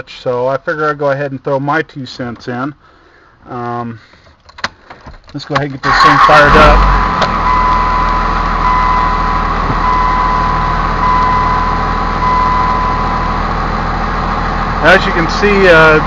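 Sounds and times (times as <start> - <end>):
steady whine: 5.9 - 16.0
diesel engine idling: 6.0 - 16.0.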